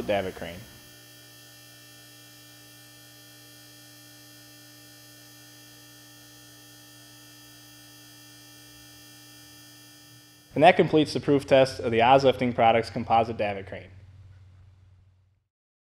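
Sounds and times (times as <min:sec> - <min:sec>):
low electrical hum: 0:00.0 - 0:15.4.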